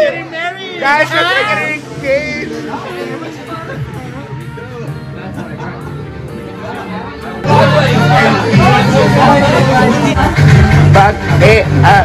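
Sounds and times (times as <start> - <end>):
music playing: 0.0 - 12.0
people chattering: 0.0 - 12.0.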